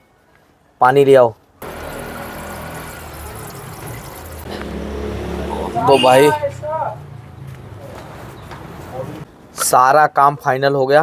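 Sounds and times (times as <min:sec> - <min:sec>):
water pouring into reservoir: 0:01.6 - 0:04.8.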